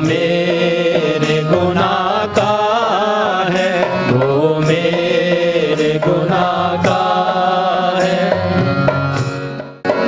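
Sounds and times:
group singing a hymn: 0:00.0 - 0:08.8
dholak drum strokes: 0:00.0 - 0:10.0
harmonium drone: 0:00.0 - 0:10.0.

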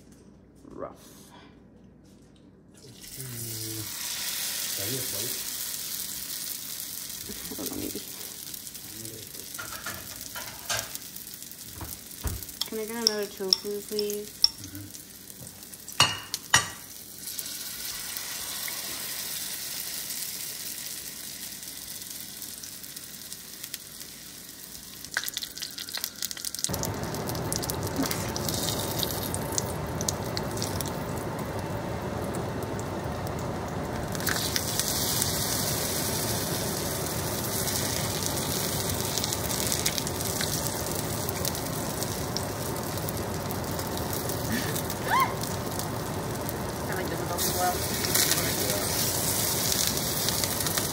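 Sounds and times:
tofu sizzling in oil: 0:03.0 - 0:50.9.

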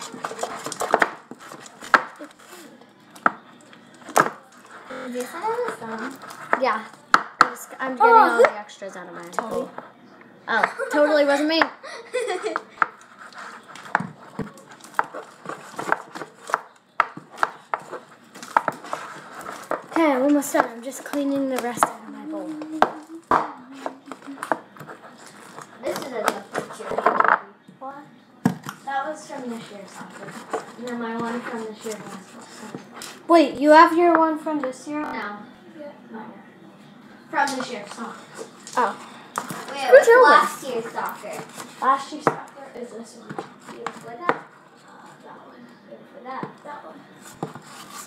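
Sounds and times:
utensil stirring slime in bowl: 0:00.0 - 0:02.5, 0:03.9 - 0:07.0, 0:12.4 - 0:27.1, 0:28.8 - 0:33.4
child's wordless voice: 0:19.9 - 0:24.4.

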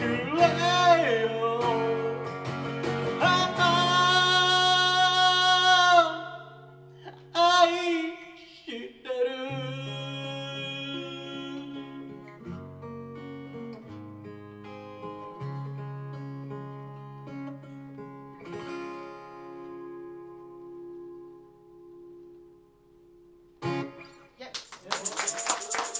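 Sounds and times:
acoustic guitar: 0:00.0 - 0:25.9
people clapping: 0:24.5 - 0:25.9.

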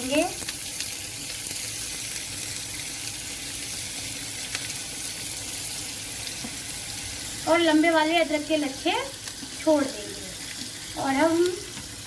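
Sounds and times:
oil sizzling in a frying pan: 0:00.0 - 0:12.0.

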